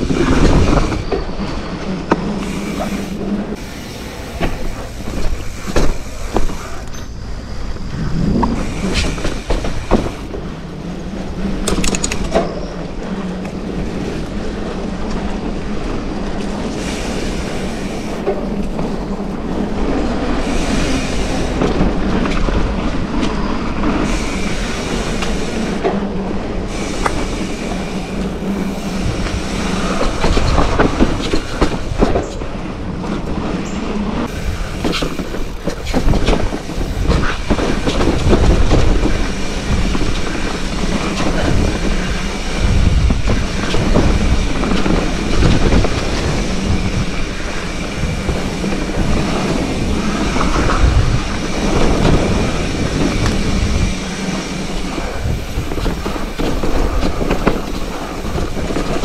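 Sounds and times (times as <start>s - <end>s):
bike tyres rolling on dirt: 0.0s - 59.0s
rushing noise: 0.0s - 59.0s.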